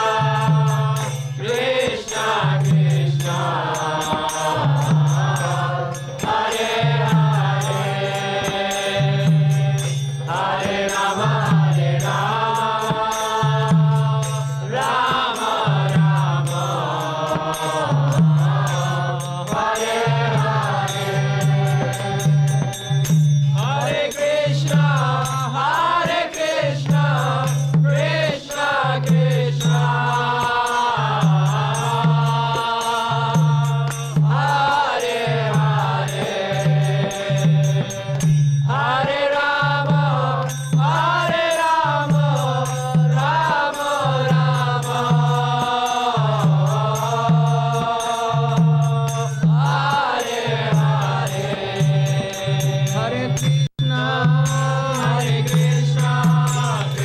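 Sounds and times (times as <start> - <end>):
low percussion beat: 0.0 - 57.0
singers chanting to a melody: 0.0 - 57.0.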